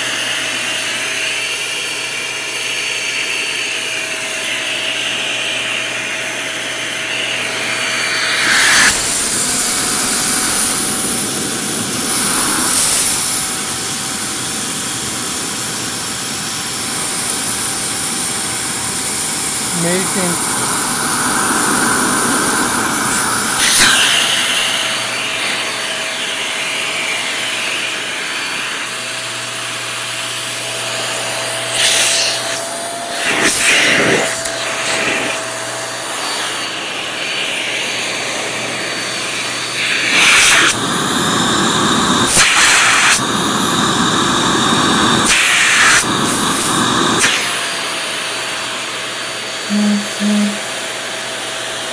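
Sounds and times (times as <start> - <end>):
hand vacuum running: 0.0 - 51.9.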